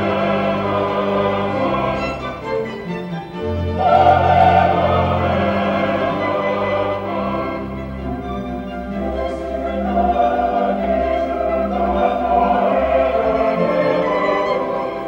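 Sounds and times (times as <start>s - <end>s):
mixed choir singing: 0.0s - 2.8s, 3.6s - 15.0s
violins: 0.0s - 15.0s
flute: 1.7s - 15.0s.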